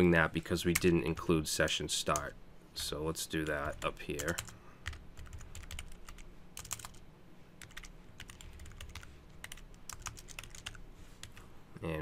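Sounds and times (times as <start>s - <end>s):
computer keyboard typing: 3.4s - 7.0s, 7.6s - 11.4s.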